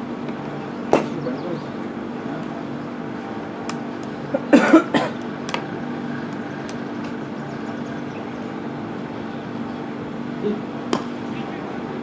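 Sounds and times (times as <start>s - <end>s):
steady low hum: 0.0s - 12.0s
person coughing: 4.4s - 5.2s.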